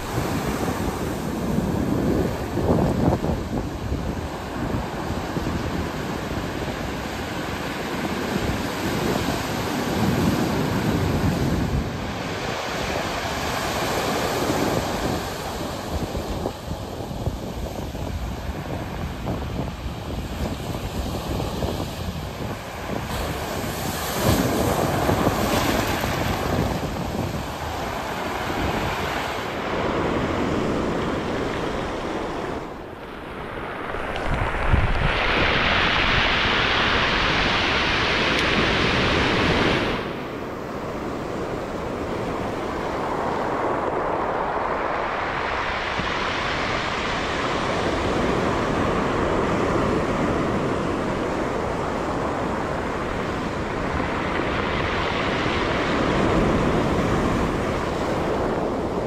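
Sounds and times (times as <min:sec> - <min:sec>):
ocean surf breaking: 0:00.0 - 0:59.0.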